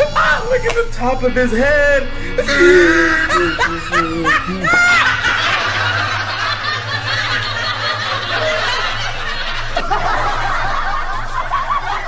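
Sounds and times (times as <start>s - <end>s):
low hum: 0.0s - 12.0s
canned laughter: 1.9s - 12.0s.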